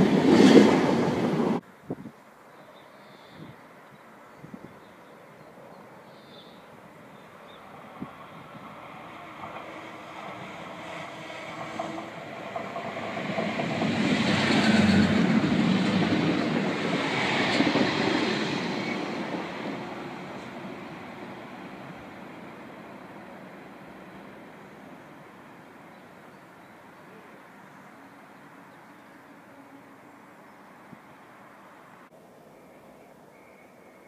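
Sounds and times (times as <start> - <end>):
diesel train passing: 0.0 - 1.8, 5.0 - 32.2.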